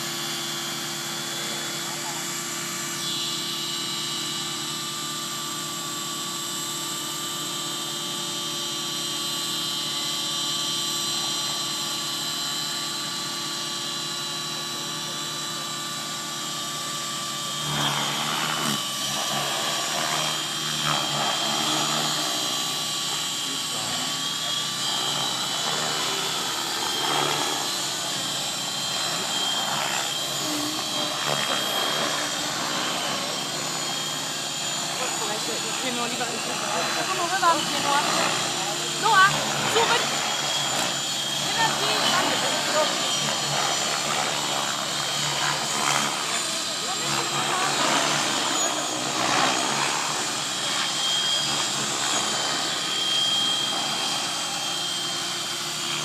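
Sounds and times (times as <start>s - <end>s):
model helicopters whining: 0.0s - 56.0s.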